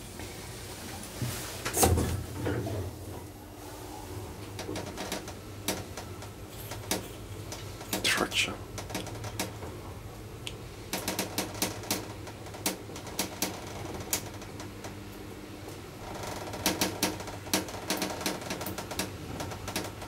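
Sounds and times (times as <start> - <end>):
elevator humming in shaft: 2.0 - 20.0.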